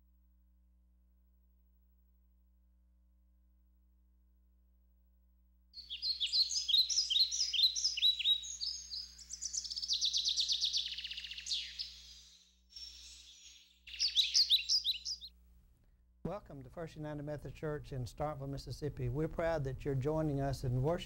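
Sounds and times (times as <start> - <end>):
songbirds chirping and trilling: 5.8 - 15.3.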